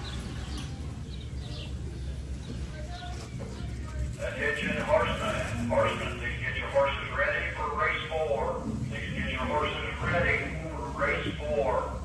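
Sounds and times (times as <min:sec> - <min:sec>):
low background hum: 0:00.0 - 0:12.0
indistinct talking: 0:00.1 - 0:12.0.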